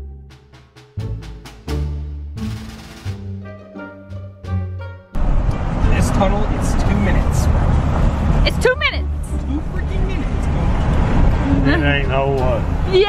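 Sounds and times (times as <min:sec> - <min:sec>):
car rumble in tunnel: 0:05.1 - 0:13.0
voices: 0:08.4 - 0:13.0.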